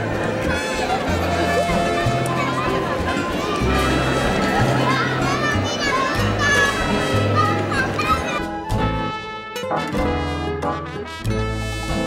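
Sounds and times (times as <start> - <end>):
children playing: 0.0 - 9.1
crowd chatter: 0.0 - 9.9
background music with bass line: 8.5 - 12.0.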